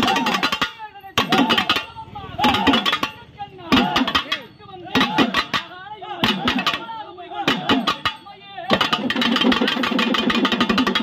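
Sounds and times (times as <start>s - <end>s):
drums beaten with sticks: 0.0s - 11.0s.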